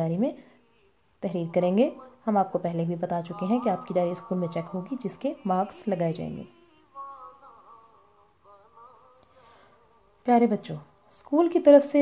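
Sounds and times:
faint wavering hum: 0:00.0 - 0:11.0.

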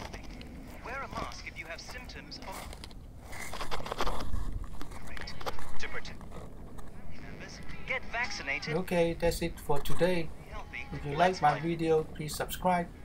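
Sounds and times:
faint radio voice: 0:00.0 - 0:02.8, 0:04.9 - 0:06.2, 0:06.8 - 0:12.5
plastic rubbing and handling: 0:00.0 - 0:08.0.

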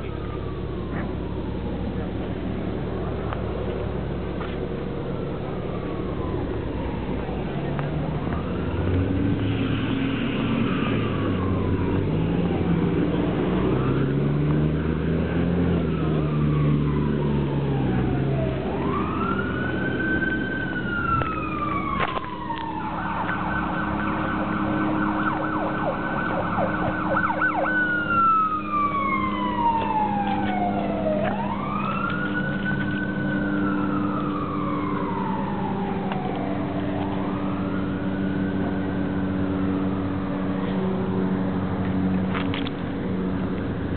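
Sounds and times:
emergency siren wailing and yelping: 0:00.0 - 0:41.4.

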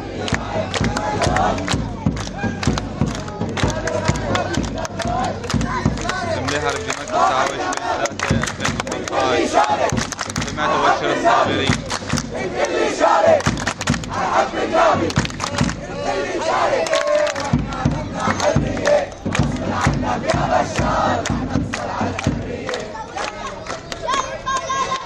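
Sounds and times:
crowd shouting and chanting: 0:00.0 - 0:25.0.

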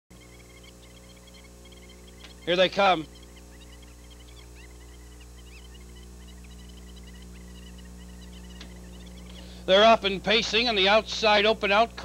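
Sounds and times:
faint high chirps: 0:00.1 - 0:09.8
electrical mains hum: 0:00.1 - 0:12.0.

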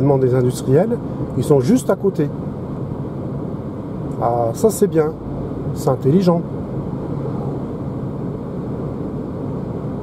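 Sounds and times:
tyre noise inside car cabin: 0:00.0 - 0:10.0.

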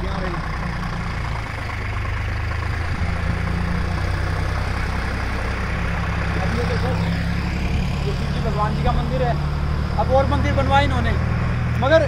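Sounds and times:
tractor diesel engine droning: 0:00.0 - 0:12.0.

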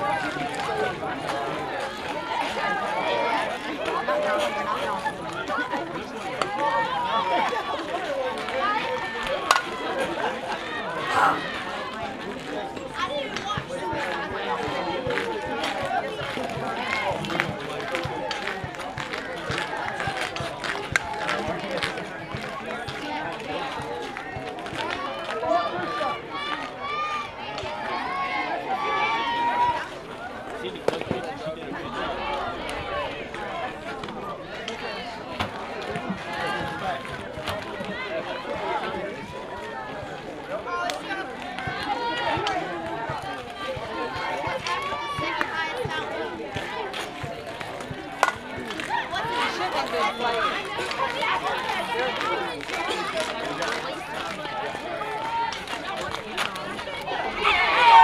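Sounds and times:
crowd talking and cheering: 0:00.0 - 0:58.0.

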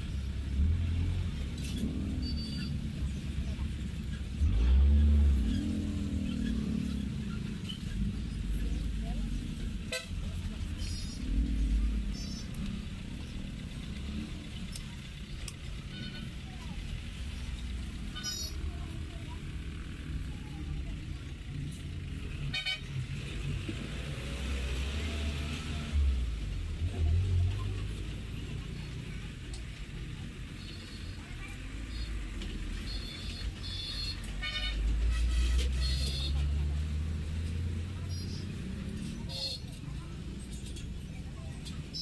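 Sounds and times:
rumble of passing vehicles: 0:00.0 - 0:42.0
people talking: 0:08.3 - 0:12.3, 0:16.2 - 0:21.9, 0:26.9 - 0:33.8, 0:37.8 - 0:42.0
high-pitched car horn toots: 0:32.9 - 0:36.4.

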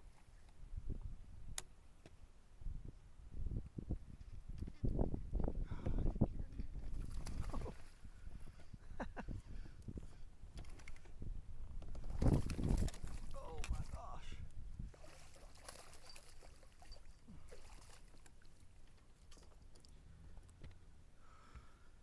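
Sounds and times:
water lapping: 0:14.8 - 0:19.9
fish thrashing and splashing: 0:14.9 - 0:19.8.

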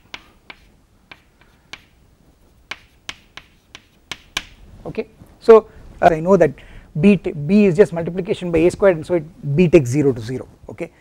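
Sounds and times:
chalk clicking on blackboard: 0:00.0 - 0:02.0, 0:02.7 - 0:04.6.

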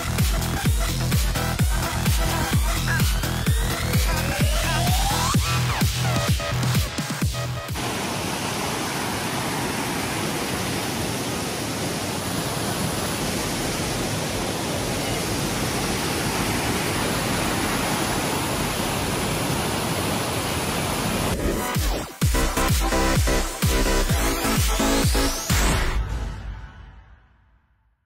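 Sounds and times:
water cascading over rocks: 0:07.6 - 0:22.3.

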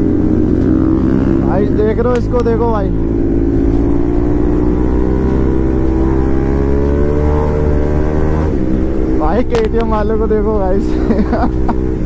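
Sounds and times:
motorcycle engine accelerating: 0:00.0 - 0:12.0.

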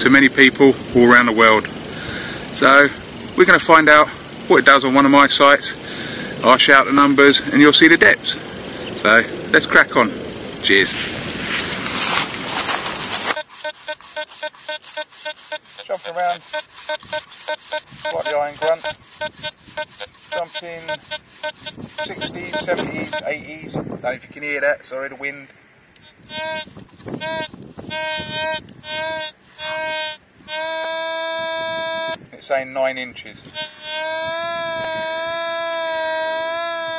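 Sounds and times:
broad rushing noise: 0:10.1 - 0:23.4
metal detector beeps: 0:13.3 - 0:23.4, 0:26.0 - 0:30.7
metal detector held tone: 0:13.3 - 0:23.4, 0:26.0 - 0:32.2, 0:33.5 - 0:35.1.

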